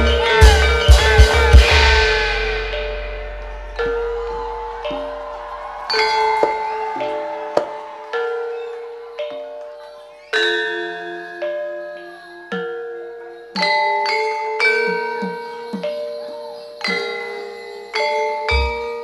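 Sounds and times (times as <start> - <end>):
gamelan metallophone notes: 0.0 - 19.0
deep low gong note: 1.7 - 5.2.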